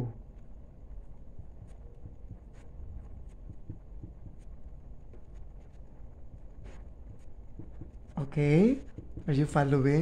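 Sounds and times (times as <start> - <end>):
low room rumble: 0.0 - 10.0
marker writing on whiteboard: 0.3 - 10.0.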